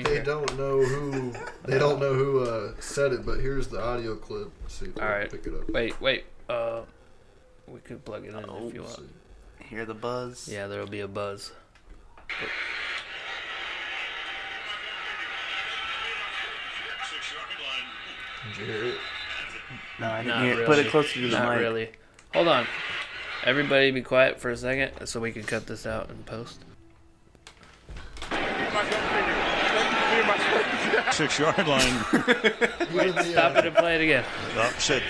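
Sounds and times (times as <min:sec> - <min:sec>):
stadium crowd noise: 0:12.3 - 0:21.3, 0:28.3 - 0:35.0
broadcast hiss from phone speaker: 0:12.3 - 0:24.3, 0:28.3 - 0:35.0.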